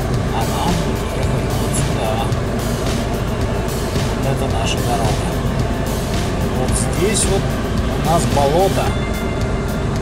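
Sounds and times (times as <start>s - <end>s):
engine and road noise in cabin: 0.0s - 10.0s.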